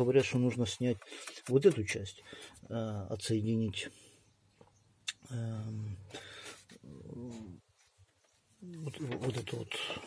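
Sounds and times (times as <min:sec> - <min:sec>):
man making hesitation sounds: 0:05.0 - 0:06.2, 0:06.8 - 0:07.7.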